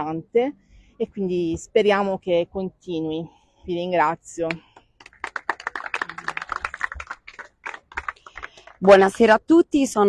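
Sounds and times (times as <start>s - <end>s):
people applauding: 5.0s - 9.3s.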